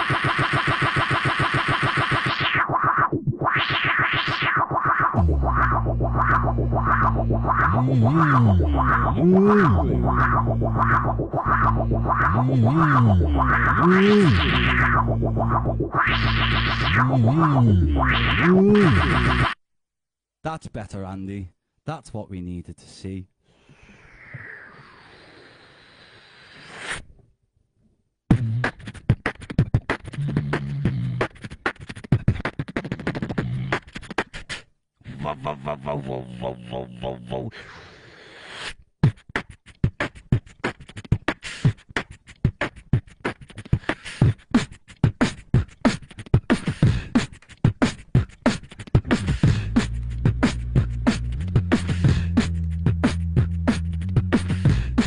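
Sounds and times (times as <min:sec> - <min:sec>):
beatbox hi-hat hits: 0:00.0 - 0:17.5, 0:28.3 - 0:34.7, 0:39.0 - 0:55.0
fast low pulse: 0:03.3 - 0:19.6, 0:49.1 - 0:55.0
deep bass note: 0:05.2 - 0:19.3.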